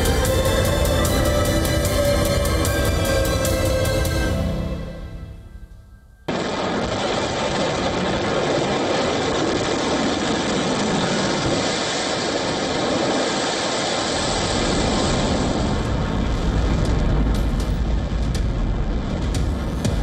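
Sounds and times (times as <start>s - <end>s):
deep rumble: 0.0s - 11.8s, 14.1s - 20.0s.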